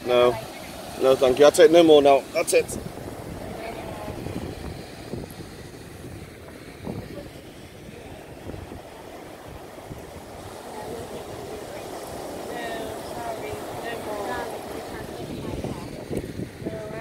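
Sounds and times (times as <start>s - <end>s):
surf breaking on beach: 0.0s - 17.0s
wind rumble on microphone: 2.0s - 17.0s.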